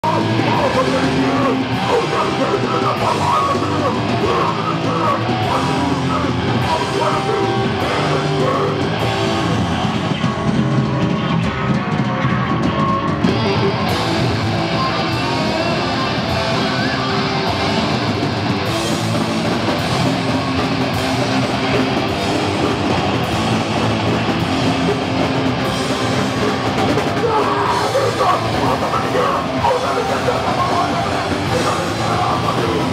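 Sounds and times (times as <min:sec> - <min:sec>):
punk rock band playing: 0:00.0 - 0:32.9.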